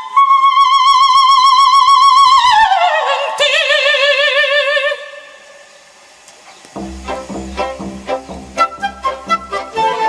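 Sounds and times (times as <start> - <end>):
operatic soprano singing: 0.0 - 5.7
orchestra with low strings: 6.1 - 10.0.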